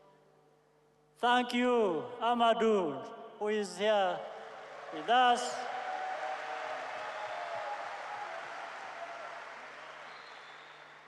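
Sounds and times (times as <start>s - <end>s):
crowd applauding and cheering: 4.3s - 11.0s.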